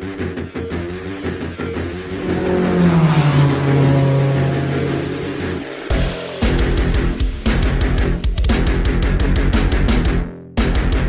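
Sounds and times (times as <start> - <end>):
revving engine sound effect: 1.4 - 8.0.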